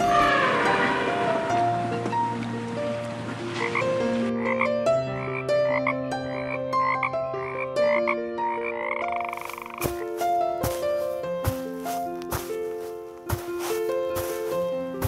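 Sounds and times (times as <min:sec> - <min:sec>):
gentle background music: 0:00.0 - 0:15.0
frog croaking: 0:03.6 - 0:10.1.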